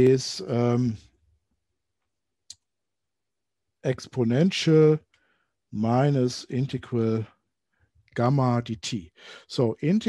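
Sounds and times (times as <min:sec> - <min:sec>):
man speaking: 0:00.0 - 0:01.0, 0:03.9 - 0:05.0, 0:05.8 - 0:07.3, 0:08.2 - 0:10.0.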